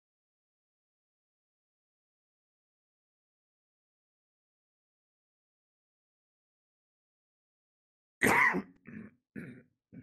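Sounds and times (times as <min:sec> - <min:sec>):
person coughing: 0:08.2 - 0:10.0.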